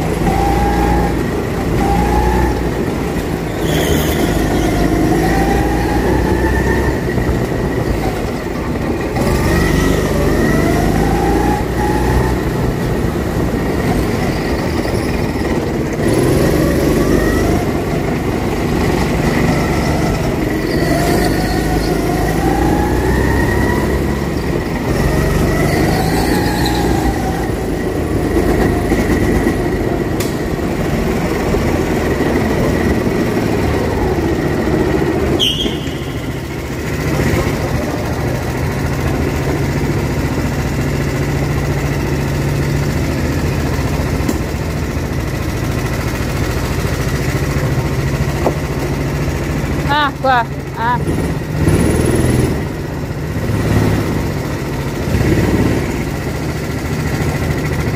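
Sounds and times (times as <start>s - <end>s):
go-kart engine revving: 0.0s - 57.9s.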